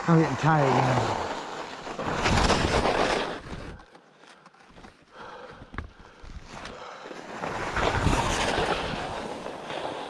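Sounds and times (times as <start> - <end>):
skis scraping over snow: 0.0 - 3.8, 6.4 - 10.0.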